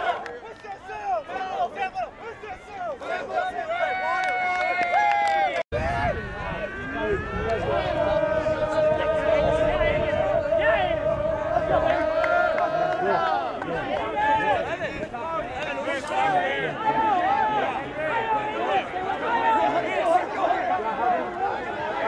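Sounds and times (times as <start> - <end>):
voices shouting and talking: 0.0 - 22.0
long held call: 5.8 - 14.4.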